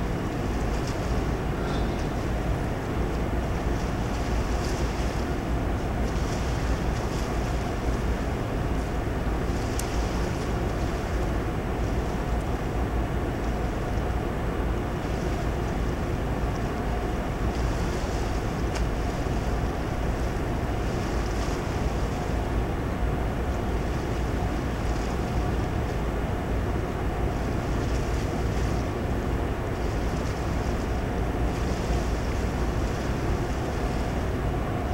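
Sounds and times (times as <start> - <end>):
hissing water swells: 0.0 - 12.8
machinery hum: 0.0 - 34.9.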